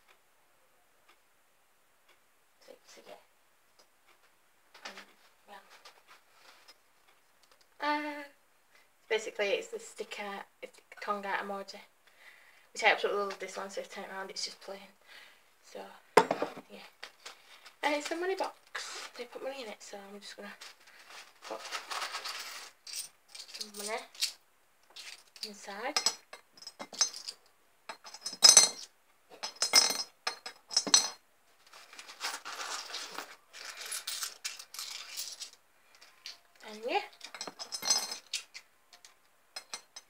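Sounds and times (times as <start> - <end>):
woman speaking: 2.6 - 3.3, 7.8 - 8.4, 9.1 - 11.9, 12.8 - 15.0, 15.6 - 17.0, 17.8 - 20.7, 23.6 - 24.1, 25.4 - 26.0, 36.6 - 37.2
coins jingling and rattling: 21.7 - 24.4, 32.2 - 35.6, 37.2 - 38.6
coins clinking into money box: 22.1 - 24.4, 32.8 - 35.6, 37.2 - 38.6.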